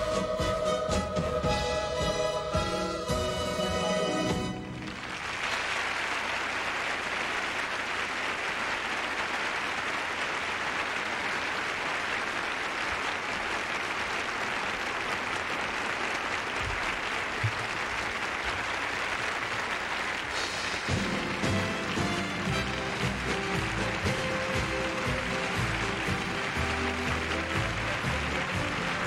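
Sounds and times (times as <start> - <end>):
audience applause: 3.7 - 29.0.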